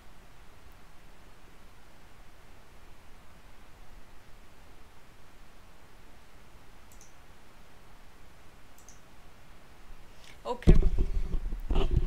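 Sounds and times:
low steady hiss: 0:00.0 - 0:12.0
faint mouse clicks: 0:06.9 - 0:07.2, 0:08.7 - 0:09.1.

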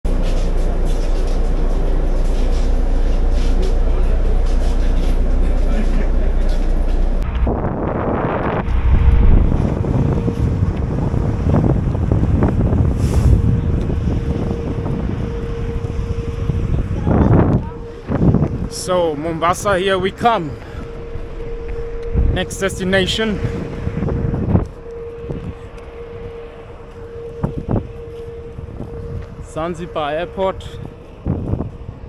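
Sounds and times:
bus engine rumble: 0:00.1 - 0:32.0
steady whine: 0:00.1 - 0:32.0
wind buffeting microphone: 0:06.7 - 0:32.0.

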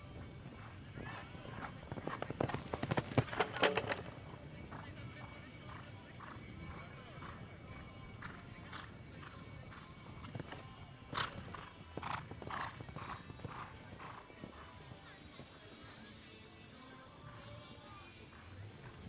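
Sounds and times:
horse cantering on sand: 0:00.0 - 0:19.0.

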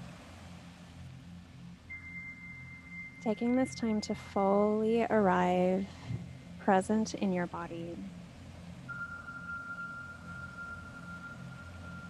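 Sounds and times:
low room hum: 0:00.0 - 0:12.0
thin high whine: 0:00.0 - 0:12.0.

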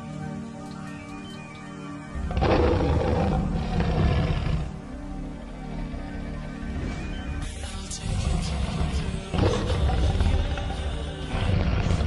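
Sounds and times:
lion roaring: 0:02.2 - 0:04.9, 0:08.1 - 0:12.0.

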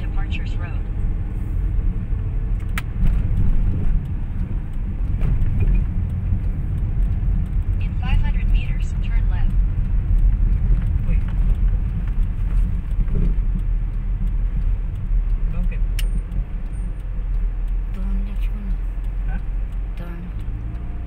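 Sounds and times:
car engine rumble inside cabin: 0:00.0 - 0:21.0
sharp click: 0:15.5 - 0:17.0.

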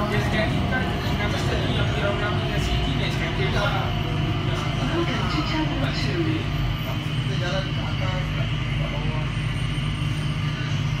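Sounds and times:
train cabin hum: 0:00.0 - 0:09.0.

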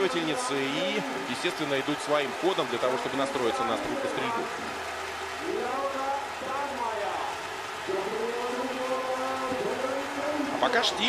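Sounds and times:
indistinct speech: 0:00.0 - 0:04.7, 0:05.4 - 0:11.0
stadium crowd noise: 0:00.0 - 0:11.0.

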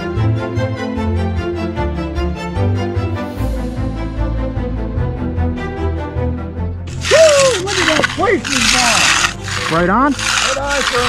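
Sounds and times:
background music: 0:00.0 - 0:11.0
hand edger scraping wet concrete: 0:06.9 - 0:11.0
person speaking: 0:06.9 - 0:11.0.

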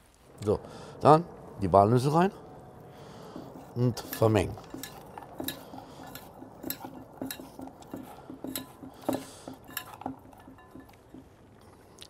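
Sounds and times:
food mixed in steel bowl: 0:03.2 - 0:11.5.

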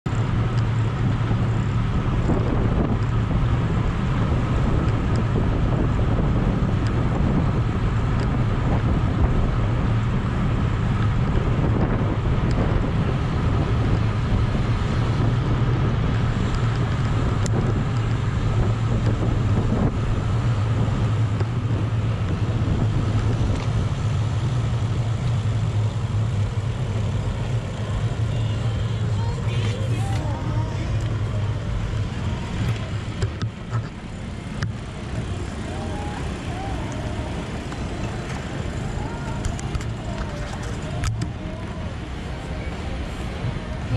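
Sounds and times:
wind rushing over microphone: 0:00.1 - 0:43.9.

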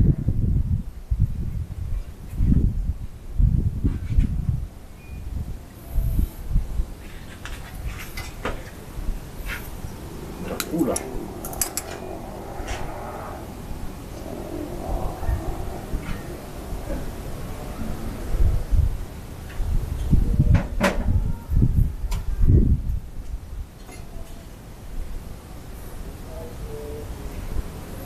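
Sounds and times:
low rumbling bumps: 0:00.0 - 0:23.6.

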